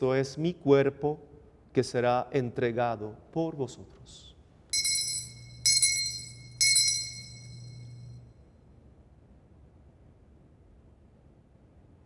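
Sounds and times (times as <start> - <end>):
altar bells jingling: 4.8 - 8.1.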